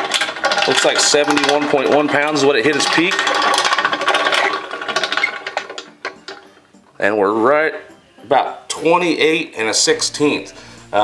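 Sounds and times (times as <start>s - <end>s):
hand-crank winch clicking: 0.0s - 6.6s.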